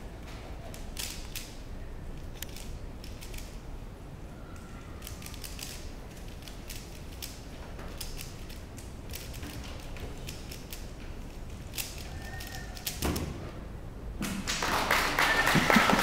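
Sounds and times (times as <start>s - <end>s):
puzzle cube clicking: 2.2s - 3.6s, 5.0s - 10.9s, 11.6s - 13.0s.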